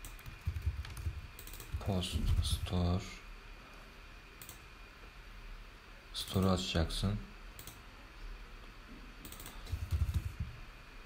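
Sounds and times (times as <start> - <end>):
computer keyboard typing: 0.0 - 2.6, 4.4 - 4.6, 7.6 - 7.8, 9.2 - 10.5.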